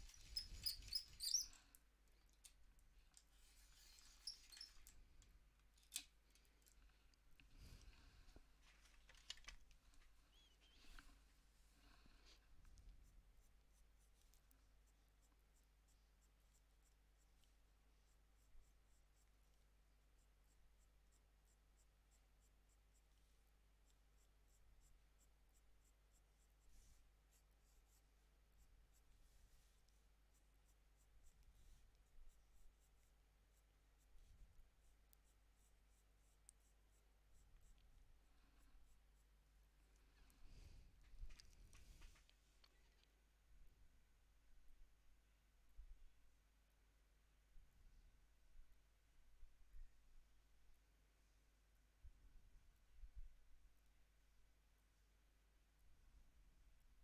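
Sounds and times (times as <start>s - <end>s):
pencil scratching on paper: 13.0s - 39.6s.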